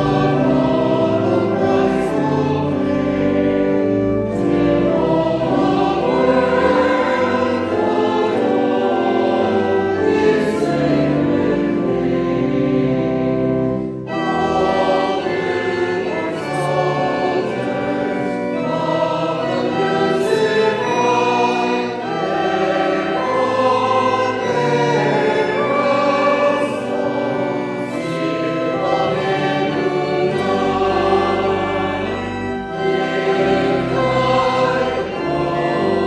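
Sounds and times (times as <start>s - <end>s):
group singing a hymn: 0.0s - 36.0s.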